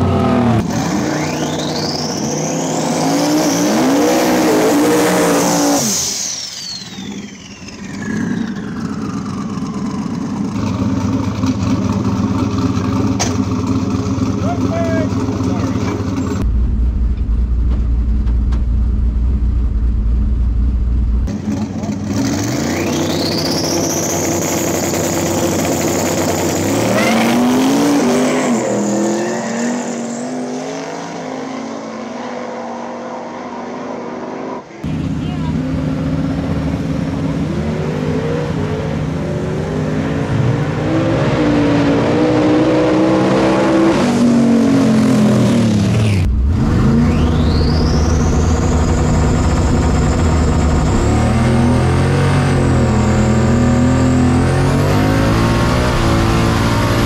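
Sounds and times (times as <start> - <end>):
race car engines revving: 0.0 - 57.0
low engine drone inside car: 16.4 - 21.3, 46.2 - 53.8.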